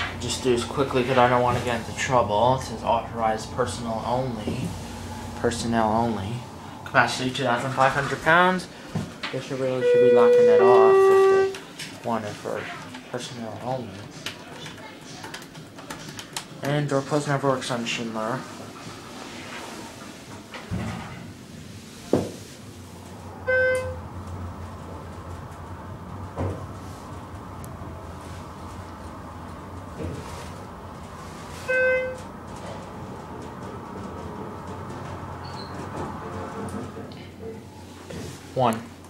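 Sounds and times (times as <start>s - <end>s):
elevator humming: 0.0s - 11.8s, 22.7s - 37.9s
elevator clunks: 9.3s - 11.5s
electronic chime tones: 9.8s - 11.5s.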